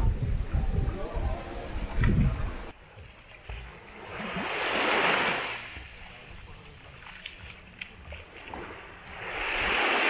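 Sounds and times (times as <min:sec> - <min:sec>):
small wave washing onto sand: 0:03.7 - 0:06.3, 0:07.1 - 0:10.0.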